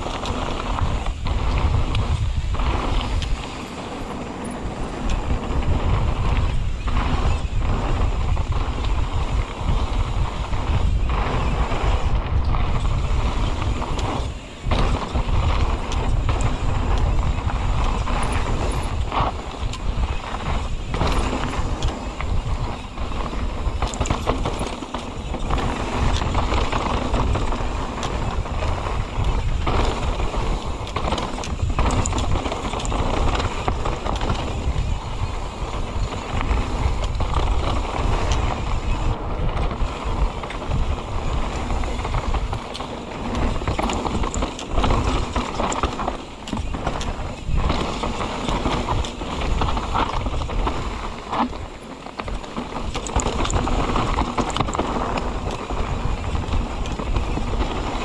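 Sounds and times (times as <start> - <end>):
bike rattling and knocking: 0.0 - 58.0
bike tyre noise on dirt: 0.0 - 58.0
wind buffeting microphone: 0.0 - 58.0.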